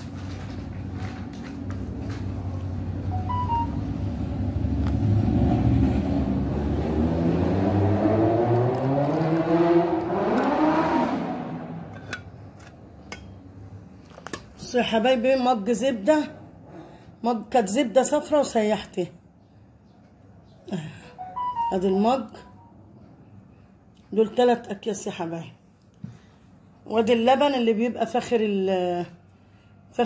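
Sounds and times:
vehicle engine passing by: 3.8s - 12.3s.

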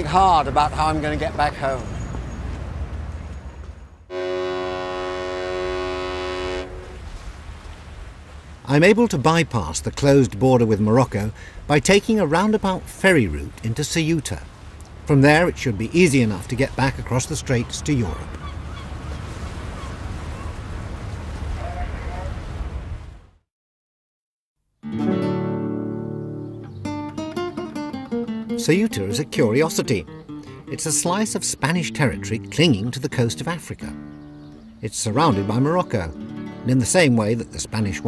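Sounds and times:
birds calling faintly: 1.2s - 4.0s, 16.4s - 21.1s, 25.9s - 36.6s
long multi-tone horn blast: 4.1s - 7.1s.

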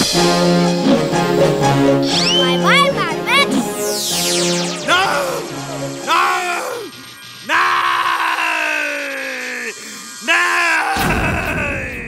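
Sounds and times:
background music: 0.0s - 8.4s
cartoon villain crying out: 6.1s - 6.9s, 7.5s - 12.0s.

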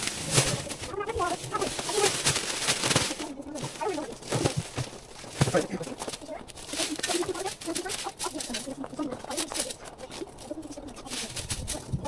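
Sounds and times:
dry leaves rustling and crackling: 0.0s - 12.0s.

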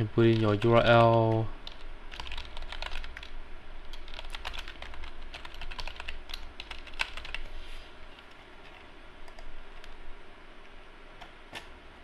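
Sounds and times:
typing on computer keyboard: 0.3s - 3.3s, 3.9s - 7.5s.

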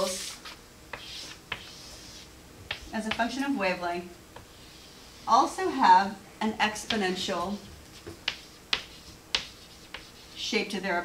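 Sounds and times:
chalk tapping on chalkboard: 0.9s - 3.3s, 8.0s - 10.4s.

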